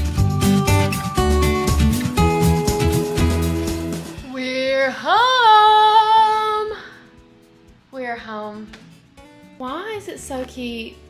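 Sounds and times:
woman singing a high note: 4.3 - 6.9.

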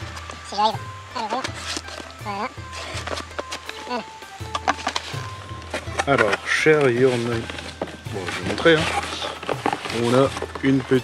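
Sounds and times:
background music with bass: 0.0 - 11.0
cardboard box being opened: 4.7 - 11.0.

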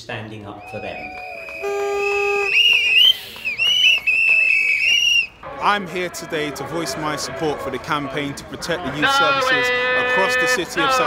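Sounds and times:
shrill whistle blasts: 0.6 - 5.3.

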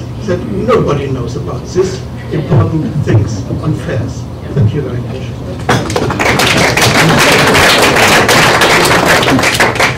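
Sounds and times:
audience applauding: 5.7 - 9.9.

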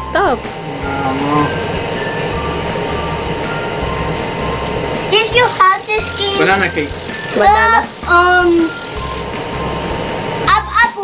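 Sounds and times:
toy timer with low pulses: 5.2 - 9.3.

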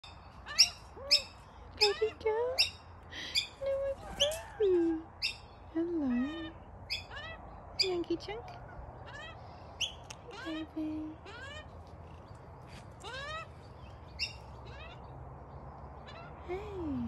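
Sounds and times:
kookaburras calling: 0.4 - 12.2.

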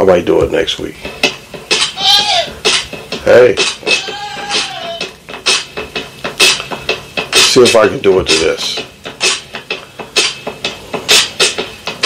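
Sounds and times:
percussion beat: 0.0 - 12.0.

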